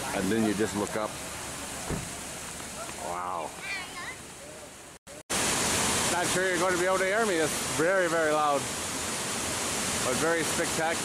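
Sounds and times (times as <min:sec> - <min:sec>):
water running down cascade: 0:00.0 - 0:11.0
low thump: 0:01.8 - 0:02.2.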